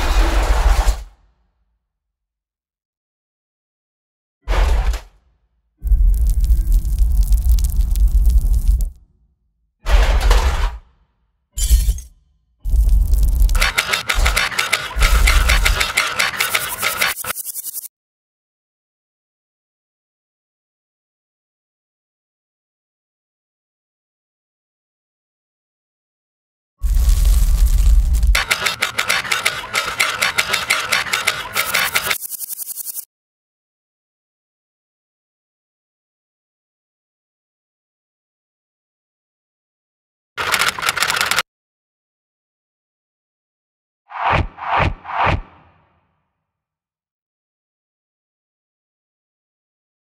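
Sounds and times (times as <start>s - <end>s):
deep rumbling: 5.8s - 9.0s
dense crackling: 5.9s - 9.0s
sharp digital clicks and ticks: 12.7s - 17.8s.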